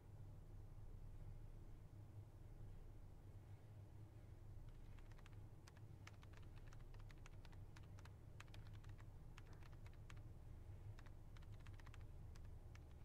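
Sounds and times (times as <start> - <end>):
low steady hum: 0.0 - 13.0
keystrokes on tablet keyboard: 4.7 - 10.3, 10.9 - 13.0.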